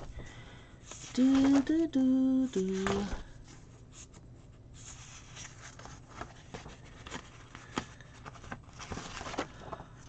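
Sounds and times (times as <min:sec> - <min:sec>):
paper pages turning: 0:00.1 - 0:01.8, 0:02.5 - 0:10.0.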